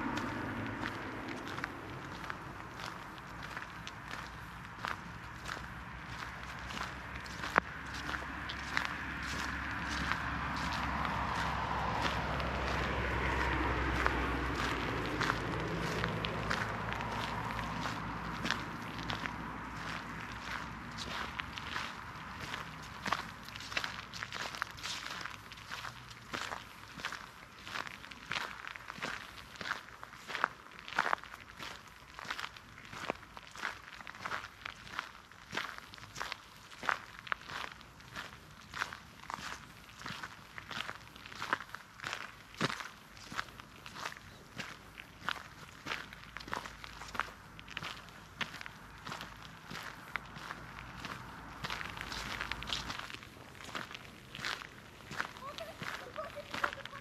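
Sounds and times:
footsteps on gravel and leaves: 0.0s - 57.0s.

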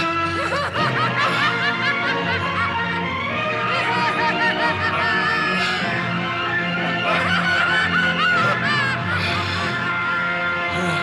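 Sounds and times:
background music: 0.0s - 11.0s
woman laughing: 0.2s - 2.7s, 3.6s - 6.0s, 7.0s - 9.4s.

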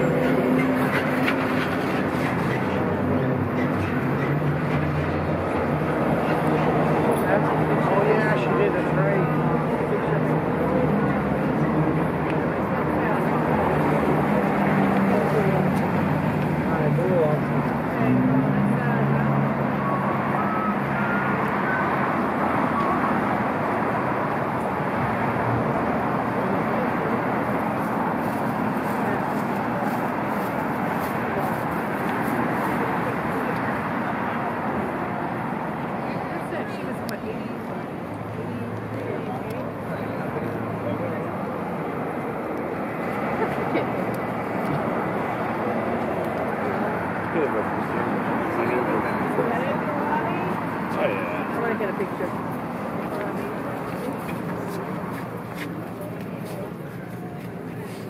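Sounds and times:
faint voices of passers-by: 0.0s - 58.0s
passing traffic: 0.0s - 58.0s.

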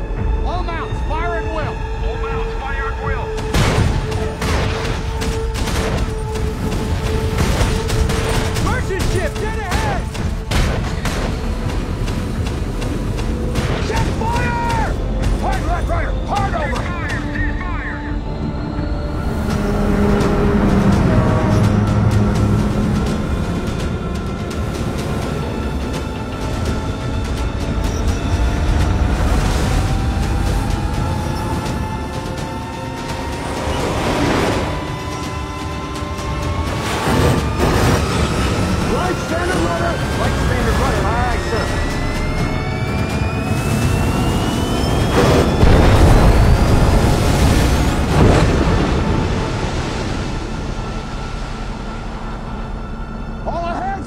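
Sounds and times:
dark film music: 0.0s - 54.0s
long rising tone: 17.5s - 39.2s, 39.8s - 54.0s.

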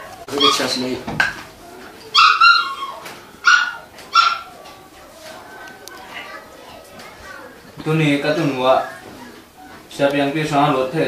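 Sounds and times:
small dog barking: 2.1s - 4.6s.

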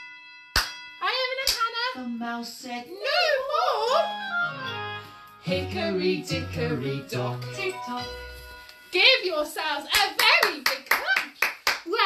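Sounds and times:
sharp hand claps: 0.5s - 0.8s, 9.9s - 12.0s
person singing: 5.4s - 8.4s.

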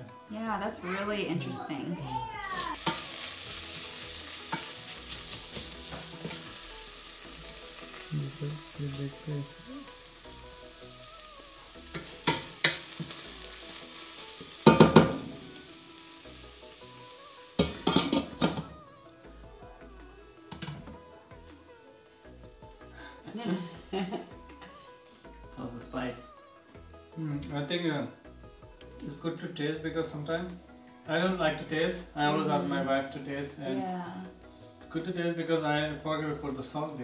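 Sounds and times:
food sizzling in a pot: 0.8s - 37.0s.

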